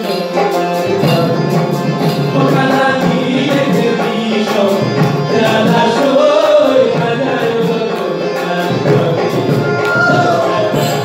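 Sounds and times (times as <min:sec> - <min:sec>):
hand percussion: 0:00.0 - 0:11.0
strummed banjo: 0:00.0 - 0:11.0
men singing folk song: 0:00.9 - 0:11.0.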